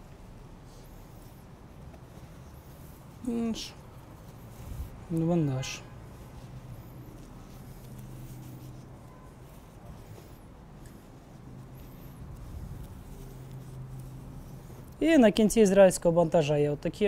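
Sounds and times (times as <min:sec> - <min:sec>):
bandage rustling: 0:00.0 - 0:16.1.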